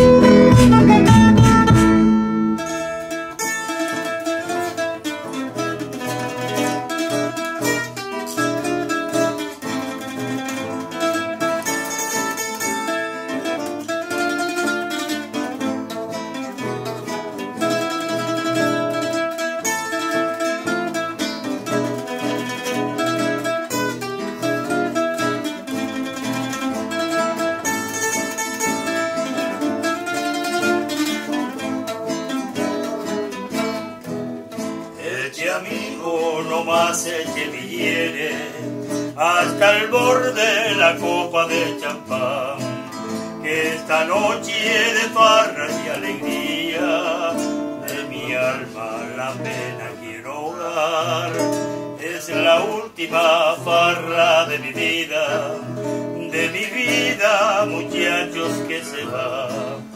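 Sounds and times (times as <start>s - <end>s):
classical guitar: 0.0s - 59.9s
mandolin-like plucked strings: 0.0s - 59.9s.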